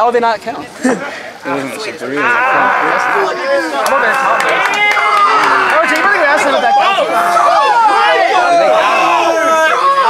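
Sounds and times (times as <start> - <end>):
crowd chatter: 0.0 - 10.0
excited voices talking: 0.1 - 10.0.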